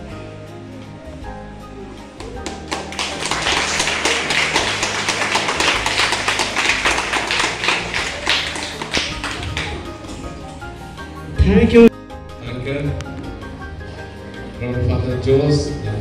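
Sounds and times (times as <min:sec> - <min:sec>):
background music: 0:00.0 - 0:16.0
audience clapping: 0:02.2 - 0:10.8.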